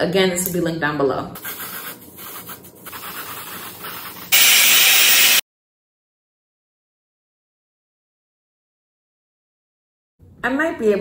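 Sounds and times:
aerosol spray hissing: 0:01.4 - 0:05.4.

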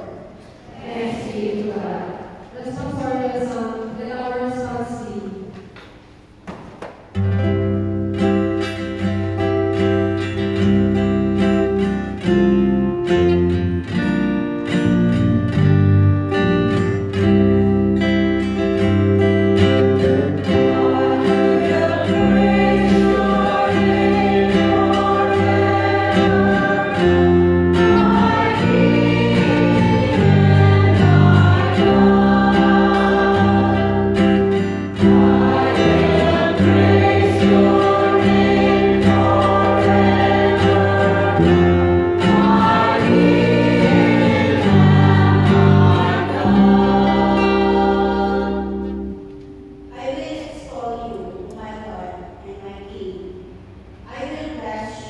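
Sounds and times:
church choir singing: 0:00.0 - 0:05.2, 0:16.7 - 0:49.6
acoustic guitar: 0:00.0 - 0:55.0
electric bass guitar: 0:07.3 - 0:49.5.

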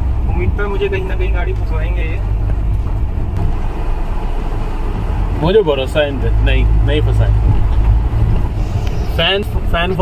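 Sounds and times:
off-road vehicle engine rumble: 0:00.0 - 0:10.0.

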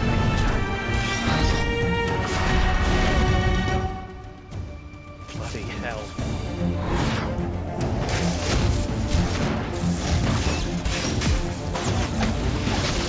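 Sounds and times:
film score music: 0:00.0 - 0:13.0.

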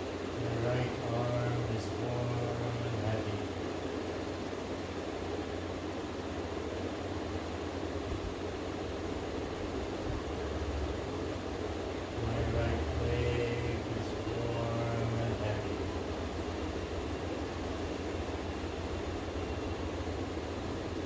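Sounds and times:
low hum: 0:00.0 - 0:21.0
room noise hiss: 0:00.0 - 0:21.0.

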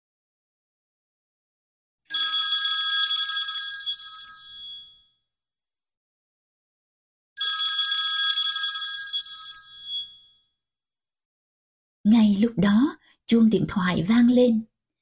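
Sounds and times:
telephone bell ringing: 0:02.1 - 0:05.2, 0:07.4 - 0:10.6.

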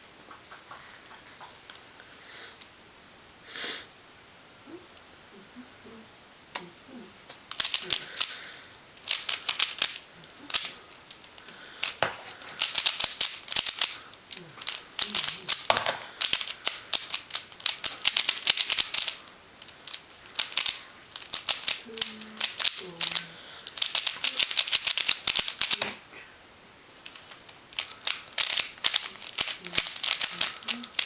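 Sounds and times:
puzzle cube clicking turns: 0:07.3 - 0:26.0, 0:27.0 - 0:31.0.

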